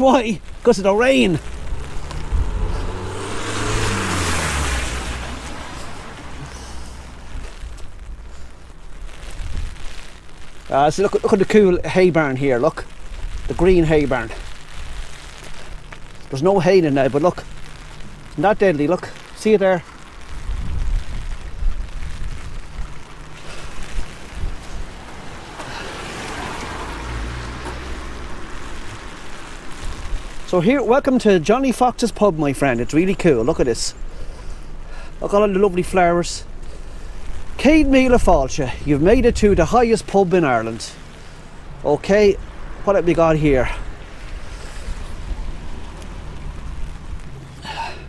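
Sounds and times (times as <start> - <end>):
wind buffeting microphone: 0.0 - 10.2, 20.1 - 30.5, 37.1 - 40.1, 41.1 - 47.4
car passing on wet road: 0.0 - 48.0
rain on an umbrella: 0.0 - 48.0.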